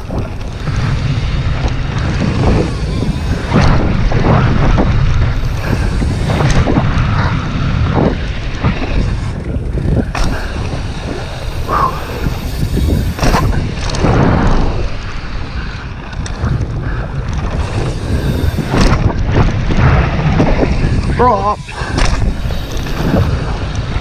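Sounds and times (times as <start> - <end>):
bike clacks and rattles: 0.0 - 24.0
tyres rumbling on gravel trail: 0.0 - 24.0
wind rushing over microphone: 0.0 - 24.0.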